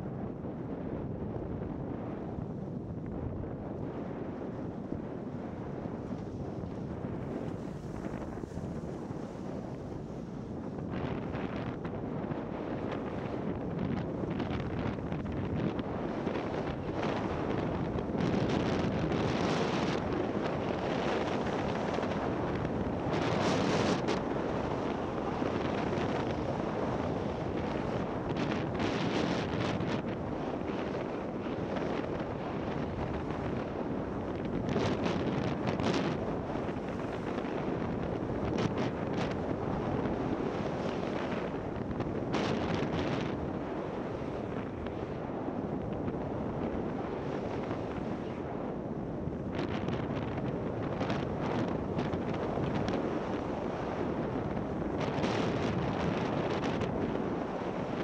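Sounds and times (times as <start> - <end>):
wind rushing over microphone: 0.0 - 58.0
skis sliding on snow: 7.0 - 10.1.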